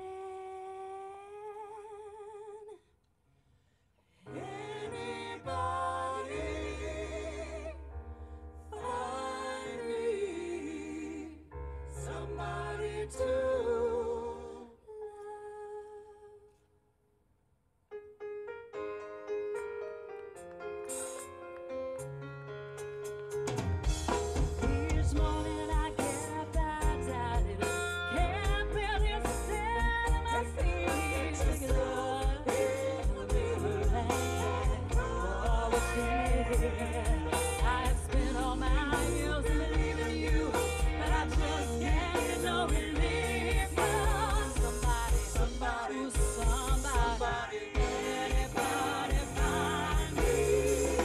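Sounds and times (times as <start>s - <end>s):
woman singing: 0.0s - 2.8s, 13.0s - 16.6s, 24.6s - 51.0s
keyboard playing piano sound: 18.0s - 51.0s
drum beat: 23.8s - 26.1s, 30.1s - 51.0s.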